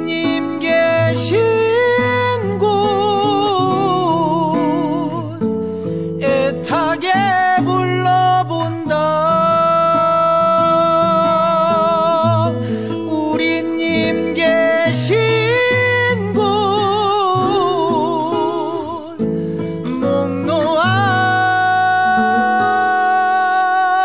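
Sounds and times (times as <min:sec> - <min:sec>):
guitar accompaniment: 0:00.0 - 0:24.0
person singing with vibrato: 0:00.0 - 0:24.0.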